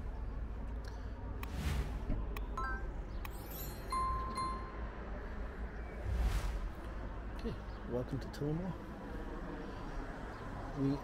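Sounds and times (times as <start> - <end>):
whoosh: 1.4 - 2.2, 6.0 - 7.1.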